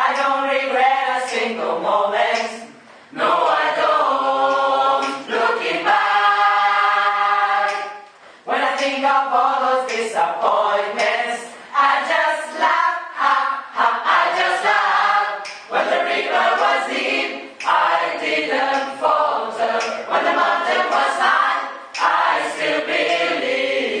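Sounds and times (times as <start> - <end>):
choir singing unaccompanied: 0.0 - 24.0.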